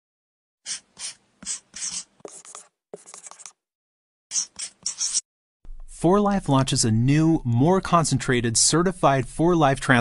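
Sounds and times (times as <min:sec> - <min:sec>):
marker pen scribbling: 0:00.6 - 0:03.6, 0:04.3 - 0:05.2.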